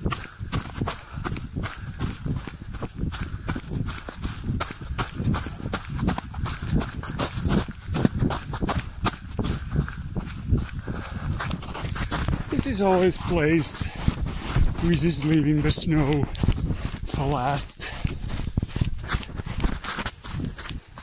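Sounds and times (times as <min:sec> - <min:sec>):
running footsteps crunching snow: 0:00.0 - 0:21.0.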